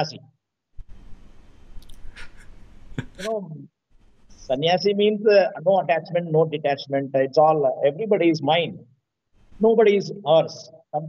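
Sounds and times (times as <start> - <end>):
man talking: 0.0 - 0.2, 3.0 - 3.7, 4.5 - 8.8, 9.6 - 11.0
faint background hiss: 0.8 - 11.0.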